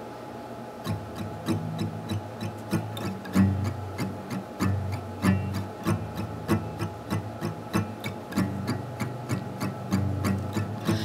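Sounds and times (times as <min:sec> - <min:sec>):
fingerpicked acoustic guitar: 0:00.8 - 0:11.0.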